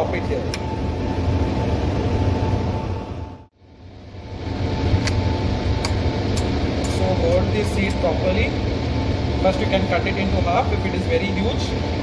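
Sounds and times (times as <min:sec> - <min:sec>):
airflow cabinet blower hum: 0:00.0 - 0:12.0
gas burner flame: 0:00.0 - 0:12.0.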